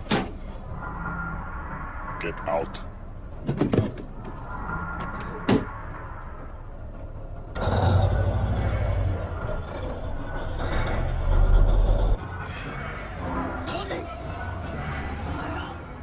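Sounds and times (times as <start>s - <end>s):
heavy truck engine rumble: 2.9s - 12.2s.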